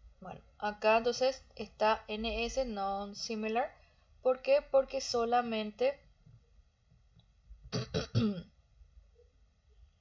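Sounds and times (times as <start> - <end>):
person clearing throat: 7.8 - 8.5.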